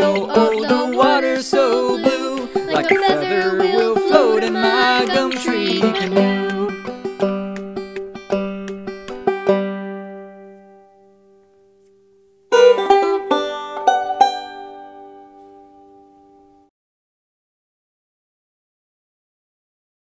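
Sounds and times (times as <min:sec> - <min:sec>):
plucked-string jingle: 0:00.0 - 0:07.6
clawhammer banjo playing: 0:00.0 - 0:10.9, 0:12.5 - 0:15.6.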